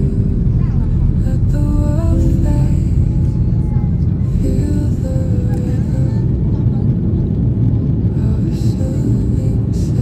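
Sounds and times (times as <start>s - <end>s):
jet engines rumbling: 0.0s - 10.0s.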